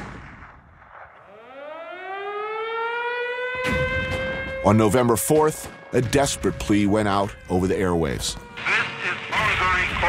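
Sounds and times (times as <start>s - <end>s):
air-raid siren wailing: 1.2s - 10.0s.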